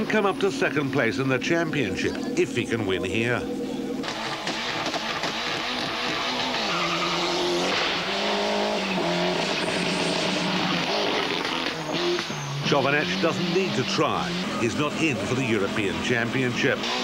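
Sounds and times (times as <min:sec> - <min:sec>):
rally car engine revving: 0:00.0 - 0:17.0.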